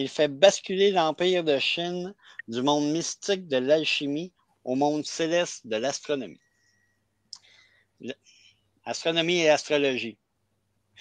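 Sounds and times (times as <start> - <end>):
man reading aloud: 0.0 - 6.4, 8.0 - 8.2, 8.9 - 10.2
faint breath: 6.4 - 8.7
mouth clicks: 7.3 - 7.6.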